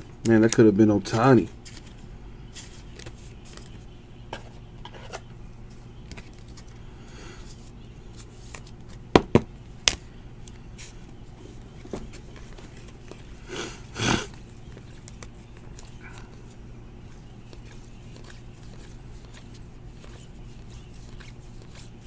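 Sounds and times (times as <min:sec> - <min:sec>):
cards rustling: 0:00.4 - 0:09.1, 0:09.9 - 0:13.4, 0:14.3 - 0:22.0.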